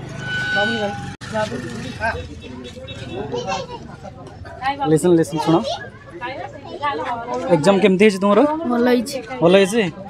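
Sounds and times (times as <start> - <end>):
voices talking: 0.5 - 10.0.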